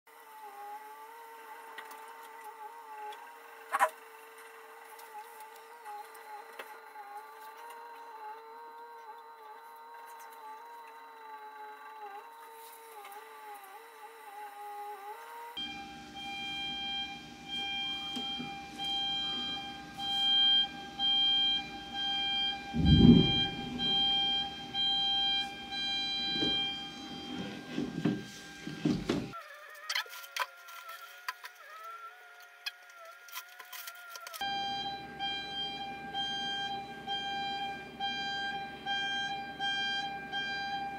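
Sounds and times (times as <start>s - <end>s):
wavering machine whine: 0.1s - 40.9s
on-off warning tones: 0.2s - 29.4s, 34.4s - 40.9s.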